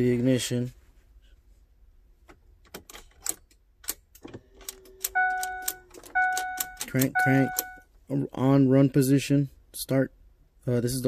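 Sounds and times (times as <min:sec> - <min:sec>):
ignition key clicking: 0:02.6 - 0:07.8
truck warning chime: 0:05.1 - 0:07.9.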